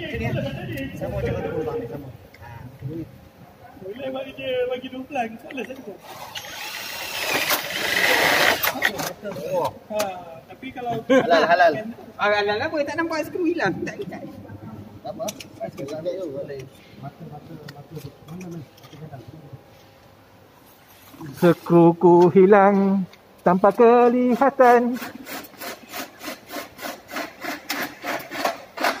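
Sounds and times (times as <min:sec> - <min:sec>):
cordless drill running into metal: 0:06.0 - 0:08.8
hand tool rasping strokes: 0:06.0 - 0:09.0, 0:24.2 - 0:29.0.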